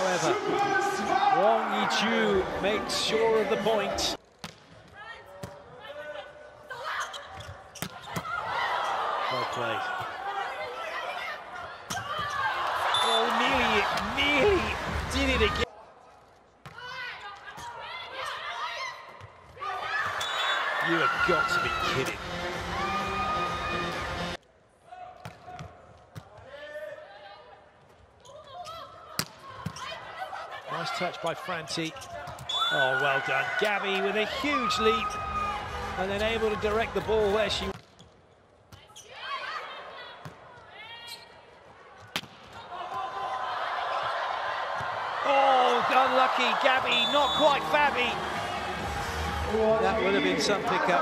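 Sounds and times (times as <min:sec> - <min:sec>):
faint voices of players and crowd: 0:00.0 - 0:51.0.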